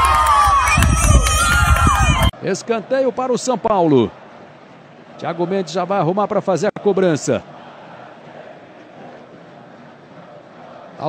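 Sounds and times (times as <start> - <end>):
stadium crowd hum: 0.0 - 11.0.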